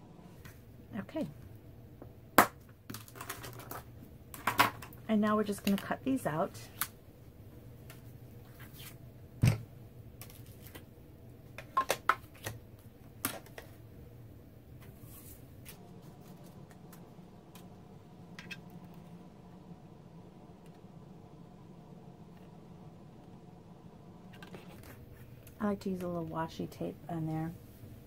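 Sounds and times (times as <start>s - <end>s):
faint low hum: 0.0s - 28.0s.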